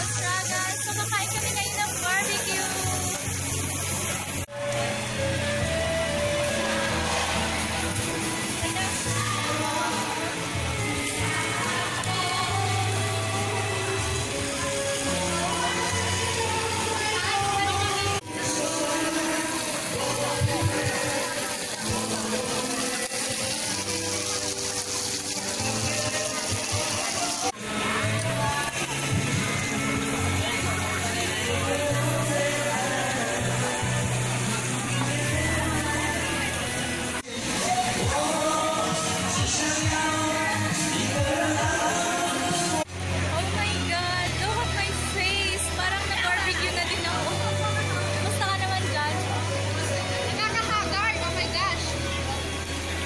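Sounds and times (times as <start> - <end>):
meat sizzling on a grill: 0.0 - 42.5
background music with bass: 0.0 - 53.0.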